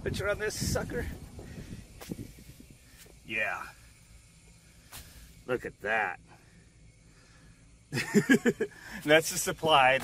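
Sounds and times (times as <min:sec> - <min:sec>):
air hissing through duct: 0:00.0 - 0:10.0.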